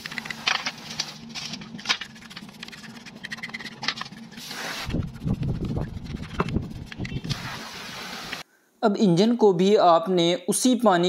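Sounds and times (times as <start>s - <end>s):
brush scrubbing metal: 0.0s - 8.4s.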